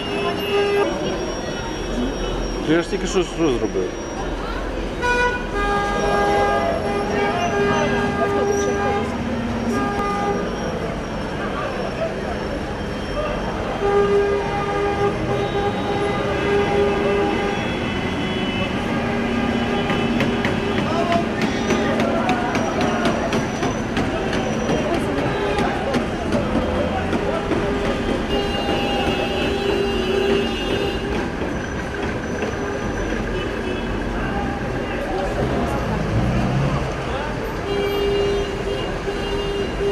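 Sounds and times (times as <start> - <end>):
vehicle horns blasting: 0.0 - 2.7, 4.9 - 11.0, 13.6 - 26.1, 27.4 - 31.4, 37.6 - 39.9
crowd chatter: 0.0 - 39.9.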